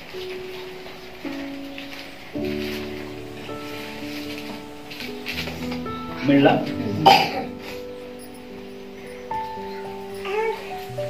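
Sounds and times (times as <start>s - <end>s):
soft background music chords: 0.0s - 11.0s
person coughing: 7.0s - 7.6s.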